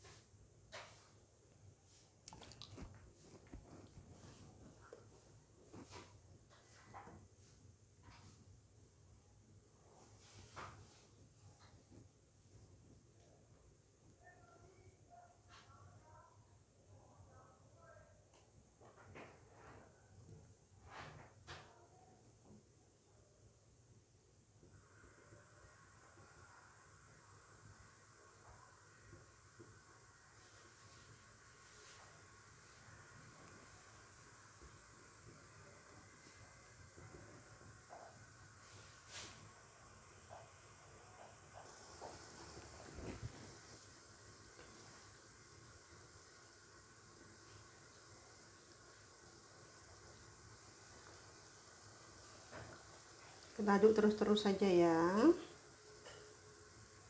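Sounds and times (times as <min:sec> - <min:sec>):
sauce simmering in a wok: 0:23.4 - 0:54.2, 0:55.3 - 0:57.0.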